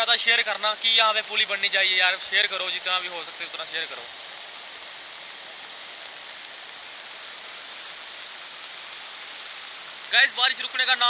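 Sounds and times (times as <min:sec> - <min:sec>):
floodwater torrent rushing: 0:00.0 - 0:11.0
heavy rain hiss: 0:00.0 - 0:11.0.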